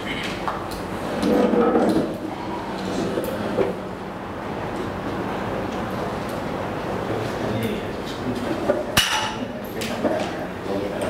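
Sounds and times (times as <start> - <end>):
low room murmur: 0.0 - 11.0.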